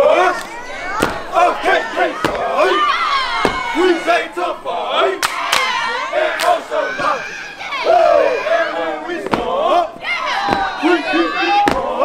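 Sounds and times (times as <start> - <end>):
young men shouting and chanting: 0.0 - 12.0
stepping impacts: 0.8 - 4.2, 9.2 - 12.0.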